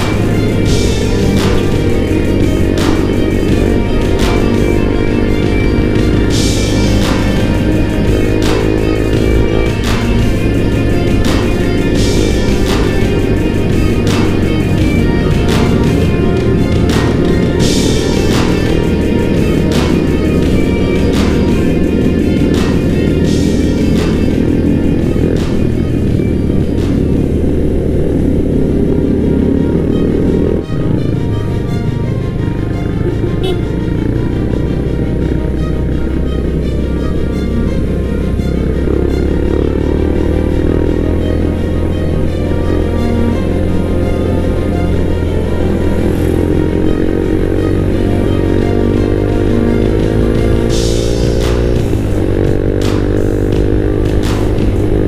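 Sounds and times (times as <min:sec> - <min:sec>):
background music: 0:00.0 - 0:55.0
motorcycle engine accelerating: 0:00.0 - 0:55.0.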